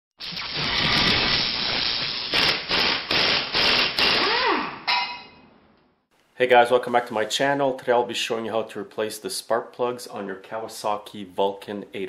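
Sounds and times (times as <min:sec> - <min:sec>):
sharp ringing hit: 0:04.8 - 0:05.5.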